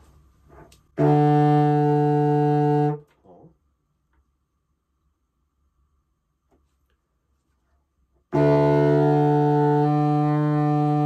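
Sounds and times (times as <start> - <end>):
contrabassoon low note: 0.9 - 3.1, 8.3 - 11.0.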